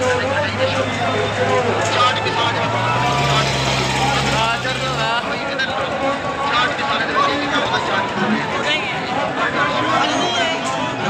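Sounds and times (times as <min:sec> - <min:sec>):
crowd voices: 0:00.0 - 0:11.0.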